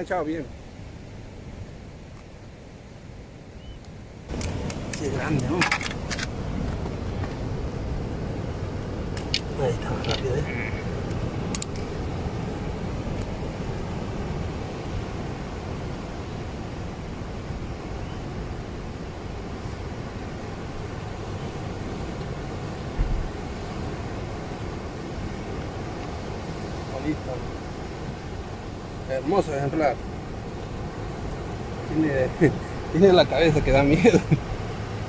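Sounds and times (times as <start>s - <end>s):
ocean surf breaking on rocks: 0.0s - 35.0s.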